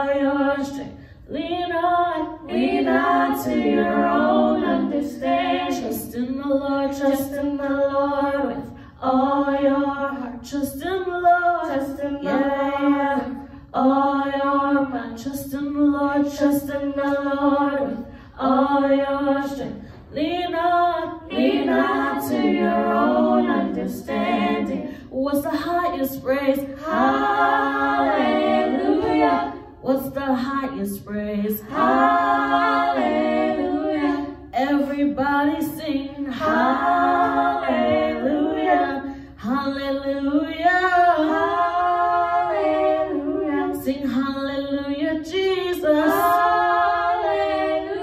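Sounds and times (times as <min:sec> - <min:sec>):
women singing in harmony: 0:00.0 - 0:48.0
short breath: 0:00.9 - 0:01.3, 0:39.0 - 0:39.4
singers breathing: 0:00.9 - 0:01.3, 0:18.0 - 0:18.4, 0:24.8 - 0:25.2, 0:39.0 - 0:39.4.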